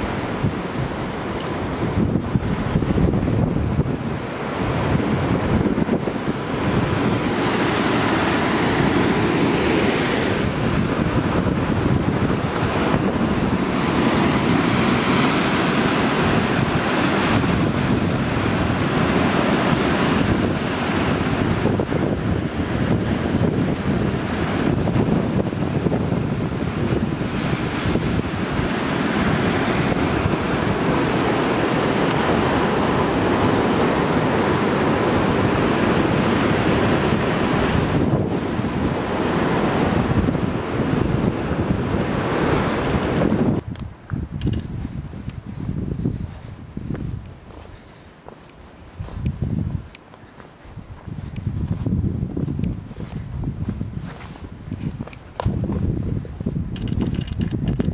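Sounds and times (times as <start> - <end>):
sea surf breaking over rocks: 0.0 - 45.5
wind buffeting microphone: 0.0 - 57.9.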